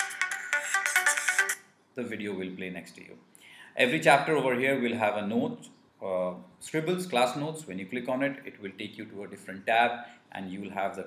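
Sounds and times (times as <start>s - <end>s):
electronic music jingle: 0.0s - 1.6s.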